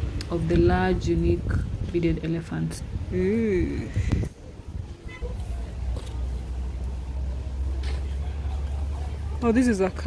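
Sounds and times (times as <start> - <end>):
road traffic rumble: 0.0 - 10.0
faint voices: 2.0 - 10.0.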